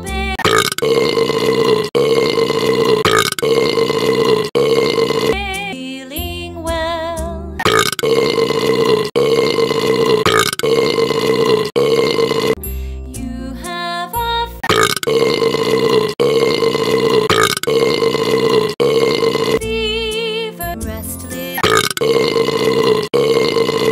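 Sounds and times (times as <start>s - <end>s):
children's song melody: 0.0s - 0.5s, 5.3s - 7.6s, 12.6s - 14.9s, 19.6s - 21.9s
long loud burps: 0.4s - 5.4s, 7.6s - 12.6s, 14.6s - 19.6s, 21.6s - 23.9s.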